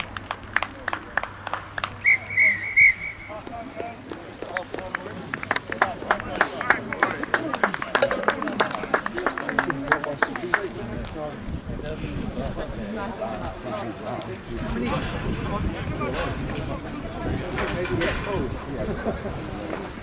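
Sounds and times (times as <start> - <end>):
referee's whistle blasts: 2.0 - 3.3.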